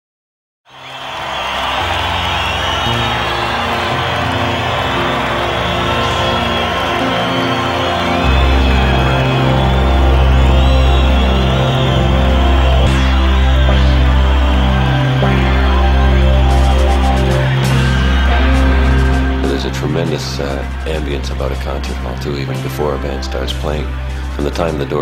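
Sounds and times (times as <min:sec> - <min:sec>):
thin gliding whistles: 0:00.7 - 0:19.7
crowd noise: 0:00.7 - 0:25.0
dark music with low held notes: 0:02.2 - 0:25.0
deep bass note: 0:08.2 - 0:24.6.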